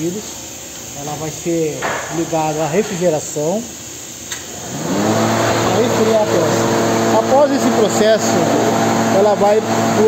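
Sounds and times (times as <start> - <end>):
fan motor humming: 0.0 - 10.0.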